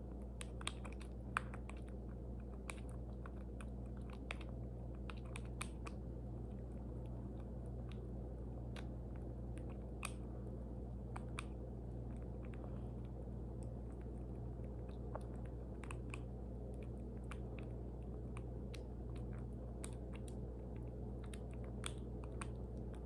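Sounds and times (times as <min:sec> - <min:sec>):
squirrel suckling wet clicks: 0:00.0 - 0:23.0
steady low hum: 0:00.0 - 0:23.0.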